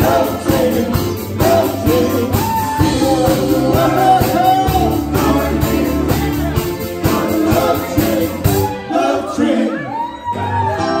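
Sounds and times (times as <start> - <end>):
steady drumbeat: 0.0 - 8.8
live band with singers: 0.0 - 11.0.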